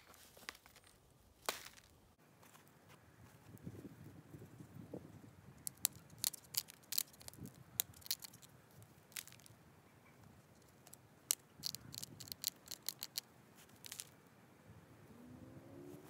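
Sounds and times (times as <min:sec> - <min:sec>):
stone flakes snapping off: 0:05.7 - 0:08.5, 0:10.9 - 0:14.1.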